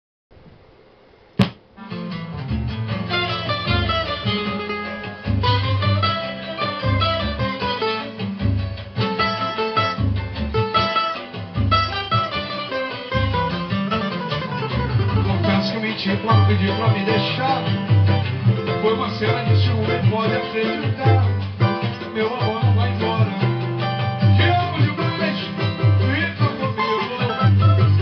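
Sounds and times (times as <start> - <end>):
deep bass notes: 1.4 - 26.8
cavaquinho samba melody: 1.4 - 28.0.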